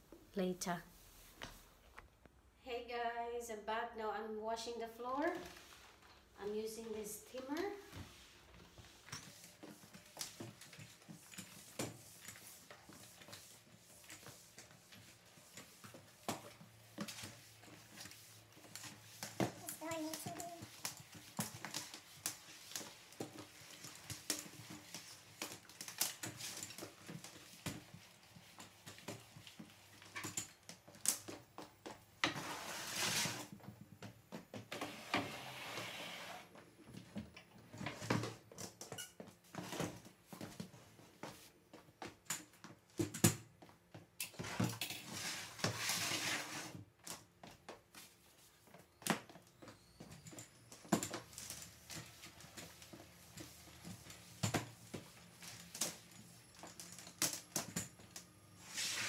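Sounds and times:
steam mop sliding rushing noise: 34.8s - 36.5s.

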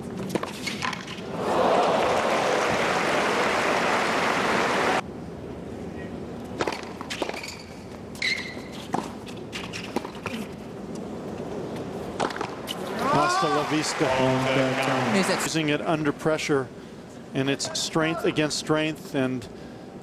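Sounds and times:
crowd applauding: 1.4s - 5.0s, 13.1s - 15.5s
racquet striking tennis ball: 6.6s - 7.5s, 12.2s - 12.8s
tennis ball bouncing: 6.6s - 7.6s, 12.2s - 12.8s
shoe squeak on court: 7.1s - 10.0s.

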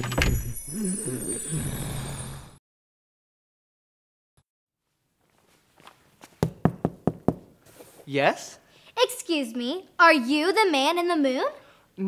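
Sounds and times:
knuckles knocking on wood: 6.4s - 7.5s.

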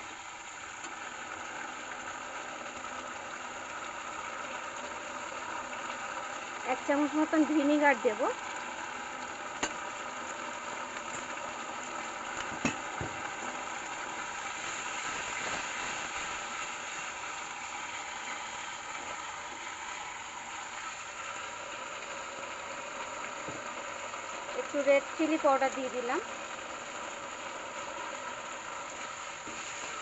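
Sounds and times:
food sizzling in a wok: 0.0s - 30.0s.

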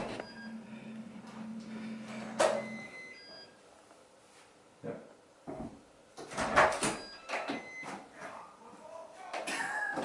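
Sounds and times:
low motor hum: 0.0s - 2.9s.

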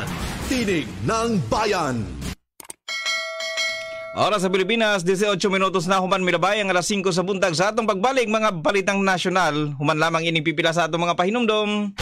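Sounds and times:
bell chime ringing: 2.9s - 4.6s.

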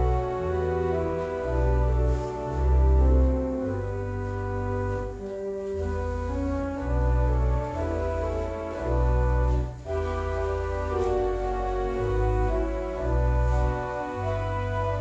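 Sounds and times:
pipe organ playing held chords: 0.0s - 15.0s.

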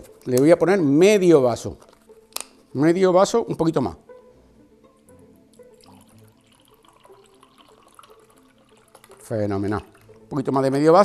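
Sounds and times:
quiet background music: 0.0s - 11.0s
liquid trickling into glass: 5.5s - 10.3s.

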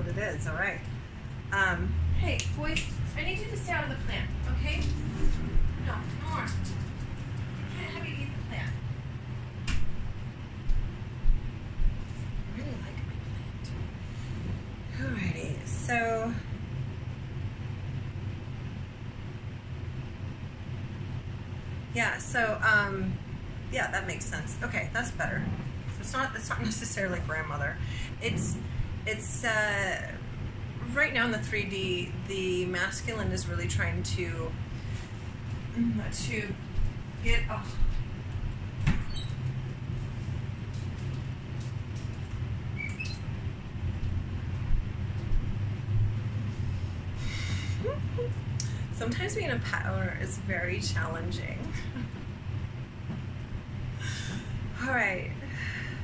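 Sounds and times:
low background hum: 0.0s - 56.0s
short high squeaks: 39.0s - 39.4s, 42.8s - 43.4s.

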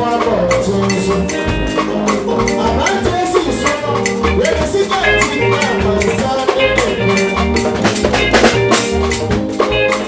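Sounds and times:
drum kit beat: 0.0s - 10.0s
live band playing instrumental: 0.0s - 10.0s.

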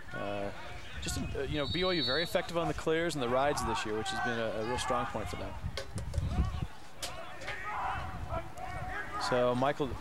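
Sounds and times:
distant shouts from players: 6.3s - 9.4s.

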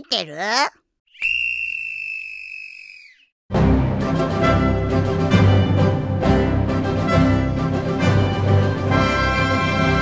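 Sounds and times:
whistle blown high note: 1.1s - 3.3s.

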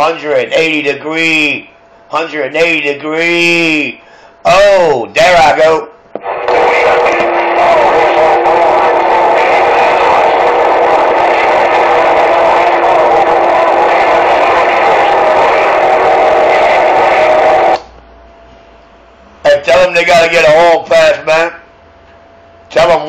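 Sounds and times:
radio static hiss: 4.5s - 17.9s
held radio tones: 6.2s - 17.8s.

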